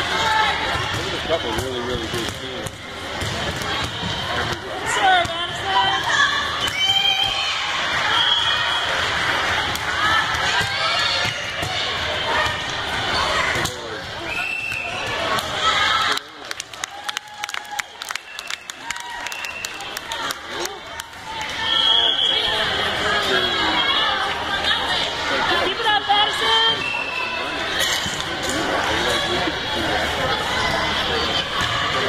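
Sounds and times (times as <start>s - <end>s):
crowd noise: 0.0s - 32.0s
volleyball hits: 0.6s - 7.5s.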